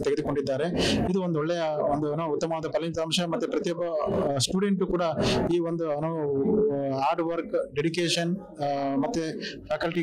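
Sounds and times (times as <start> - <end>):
man talking into a microphone: 0.0 - 10.0.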